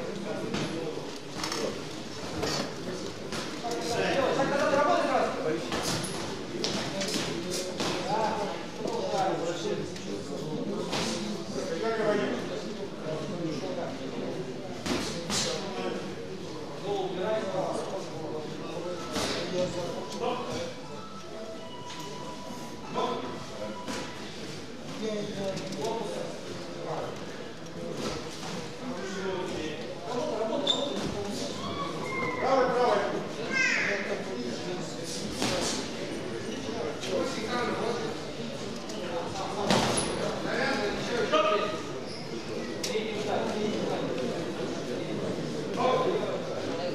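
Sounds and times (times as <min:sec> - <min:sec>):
people shouting and talking: 0:28.8 - 0:35.0.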